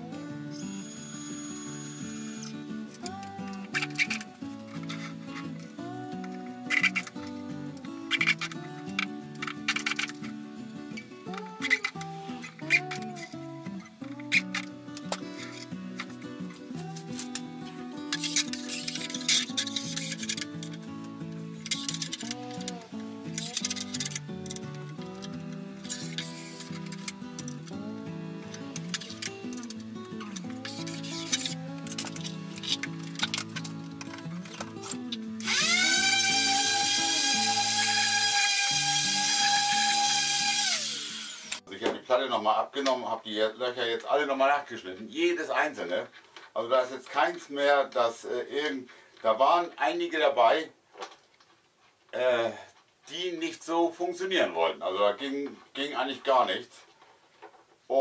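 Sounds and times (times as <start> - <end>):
background music: 0.0 - 41.7
electric drill whining: 0.6 - 3.2, 25.3 - 27.8, 34.6 - 41.6.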